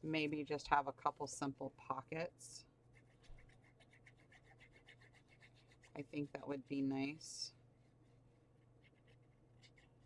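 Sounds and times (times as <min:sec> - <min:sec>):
glue bottle scratching on card: 0:02.9 - 0:06.8, 0:07.8 - 0:10.0.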